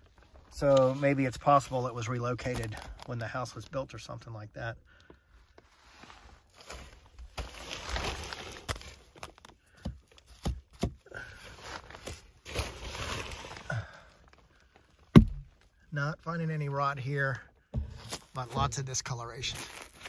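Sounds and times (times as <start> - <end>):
rustling and scraping of crawling: 5.4 - 10.5, 11.2 - 15.7
knocks: 15.1 - 15.5.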